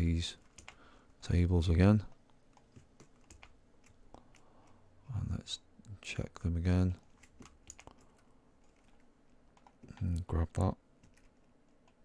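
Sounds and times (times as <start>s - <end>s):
keyboard and mouse clicks: 7.0s - 10.3s.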